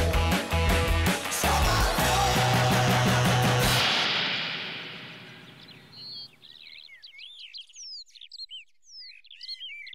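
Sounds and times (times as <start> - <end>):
music: 0.0 - 5.4
birds chirping: 4.8 - 9.9.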